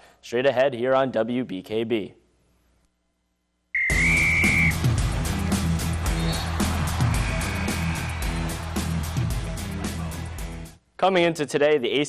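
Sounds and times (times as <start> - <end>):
whistle blast: 3.8 - 4.9, 6.1 - 8.4
music with fast steady beat: 3.9 - 10.8.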